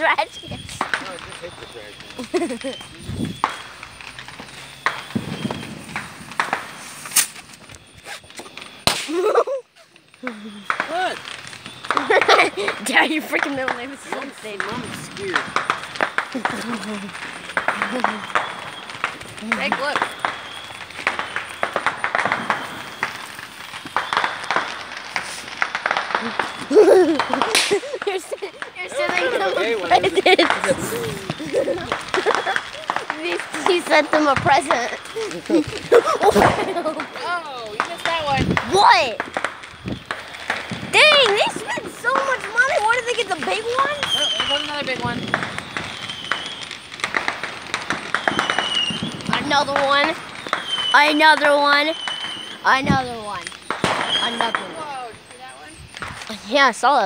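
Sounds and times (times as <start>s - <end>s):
fireworks crackling: 0.0s - 57.0s.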